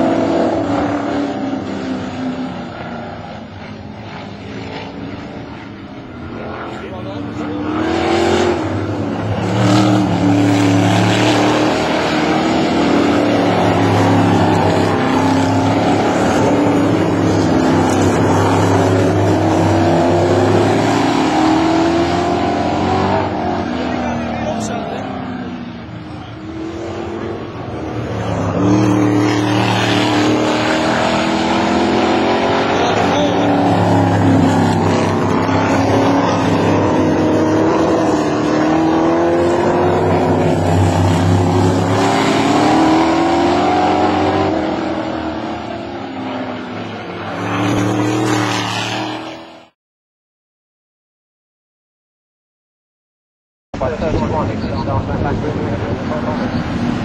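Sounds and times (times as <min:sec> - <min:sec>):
race car engines running hard: 0:00.0 - 0:49.7, 0:53.8 - 0:57.0.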